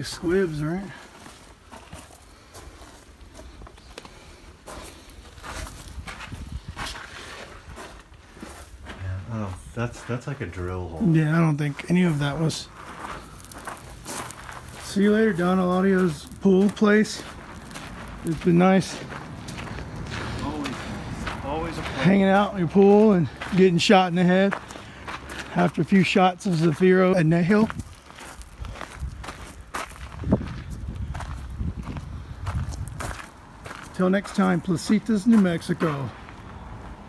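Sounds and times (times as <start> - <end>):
footsteps on gravel: 0.0 - 37.0.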